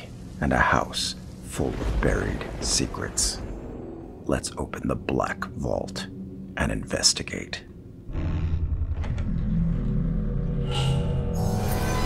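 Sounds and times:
vault door low rumble: 7.7s - 11.3s.

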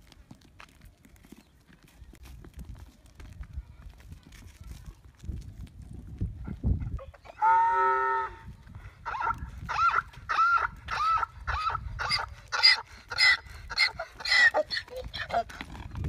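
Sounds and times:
donkey braying: 9.0s - 15.7s.

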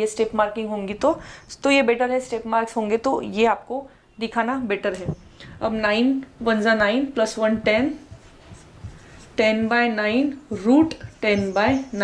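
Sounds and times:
woman speaking: 0.0s - 8.2s, 9.4s - 12.0s
marker writing on whiteboard: 6.8s - 12.0s.

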